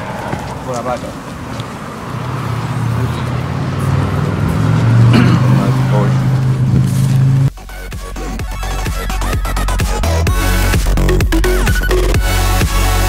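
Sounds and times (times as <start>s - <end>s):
car engine running: 0.0s - 13.0s
electronic dance music: 7.5s - 13.0s.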